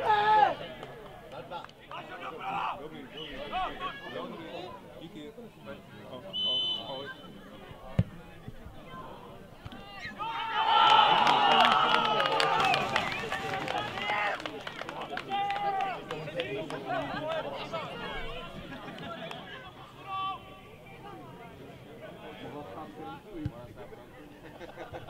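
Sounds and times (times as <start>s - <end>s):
men shouting and cheering: 0.0s - 0.8s, 10.1s - 16.2s.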